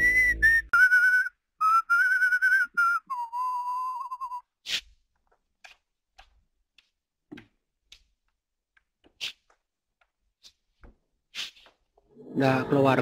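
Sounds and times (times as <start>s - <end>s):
person whistling a tune: 0.0s - 4.4s.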